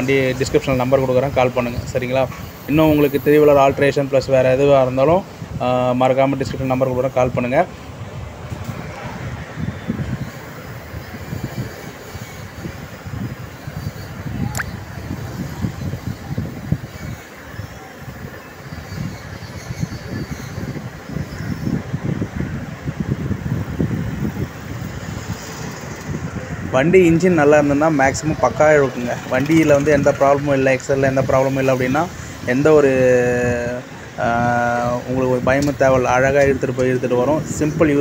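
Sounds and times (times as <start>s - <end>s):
road traffic: 0.0s - 38.0s.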